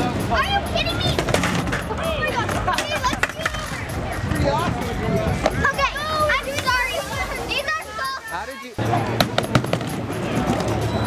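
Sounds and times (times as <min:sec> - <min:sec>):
young children calling and squealing: 0:00.0 - 0:08.8.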